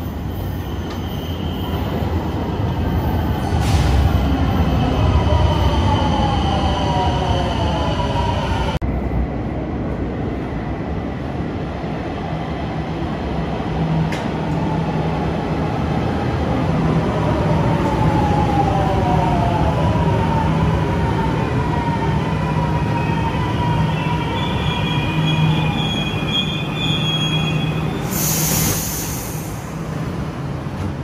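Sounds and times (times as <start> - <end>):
high brake squeals: 0.2 - 4.4, 23.9 - 29.6
train low rumble: 1.8 - 31.0
burst of air hiss: 28.0 - 29.7.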